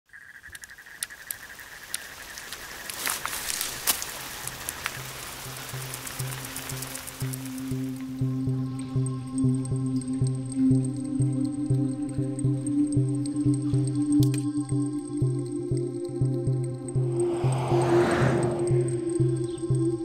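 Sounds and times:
insect trilling: 0.1 - 14.0
sharp clicks and crackles: 0.4 - 8.1
sustained music tones: 5.1 - 20.0
low pulsing music note: 15.7 - 20.0.

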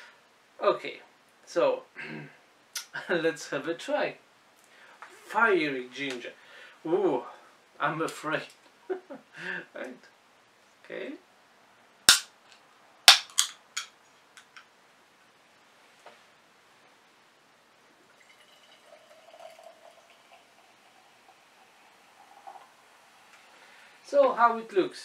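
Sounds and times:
can ring-pull cracking: 13.1 - 14.6
drink pouring into glass: 18.1 - 23.5
drink fizzing: 18.1 - 24.0.

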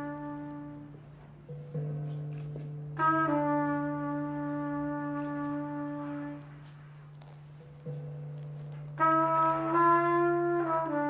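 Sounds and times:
trumpet long note: 0.0 - 1.6, 2.9 - 7.1, 9.0 - 11.0.

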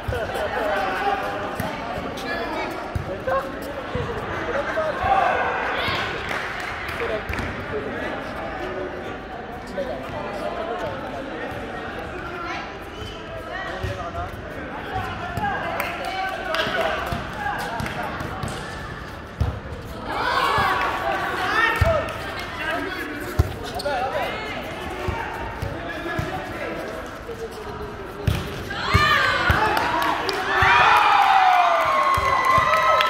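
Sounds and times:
players talking and calling: 0.0 - 33.0
volleyballs hit and bouncing: 14.9 - 24.0, 28.2 - 33.0.

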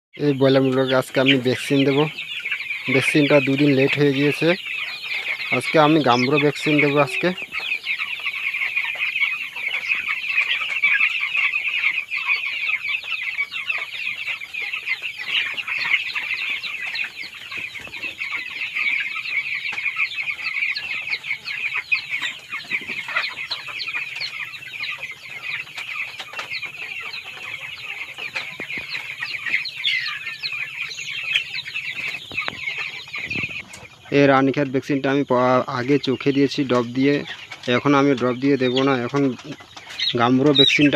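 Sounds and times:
chicks peeping: 0.2 - 40.9.

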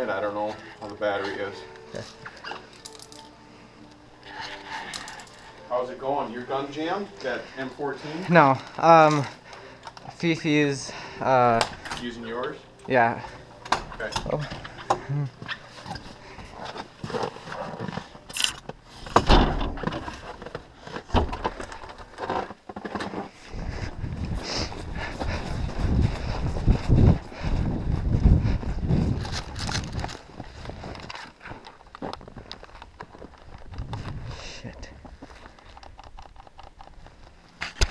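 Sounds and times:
rifle and gear rattling: 2.0 - 3.4, 4.4 - 5.9, 28.4 - 34.2, 35.0 - 37.5
low rumble of movement noise: 23.4 - 31.2, 33.3 - 36.3.

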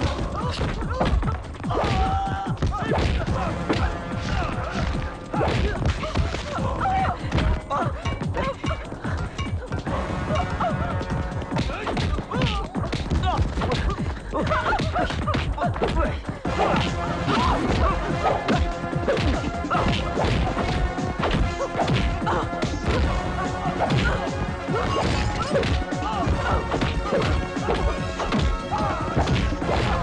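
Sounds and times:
action music: 0.0 - 30.0
punches and blows: 0.0 - 30.0.

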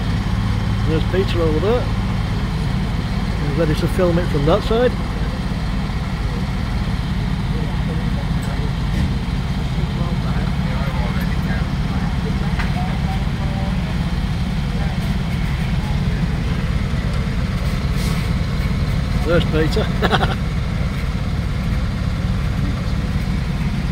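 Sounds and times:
diesel engine idling: 0.0 - 23.9.

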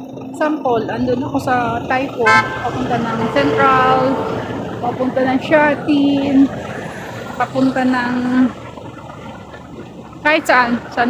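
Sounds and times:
distant traffic: 0.0 - 11.0
woman's drawn-out syllable: 2.2 - 4.6.

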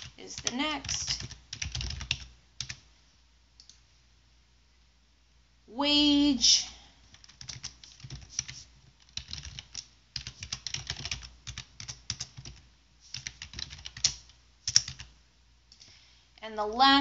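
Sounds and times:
computer keyboard typing: 0.0 - 2.8, 7.0 - 15.1.

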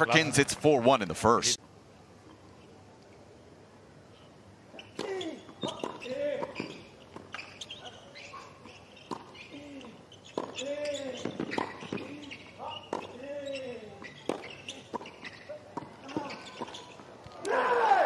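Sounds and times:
tennis ball bouncing: 9.0 - 9.4, 10.3 - 12.1, 12.8 - 13.2, 14.1 - 16.8
tennis racquet strikes: 11.2 - 12.1.

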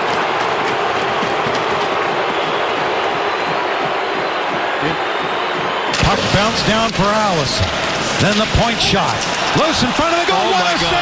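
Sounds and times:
crowd cheering loudly: 0.0 - 11.0.

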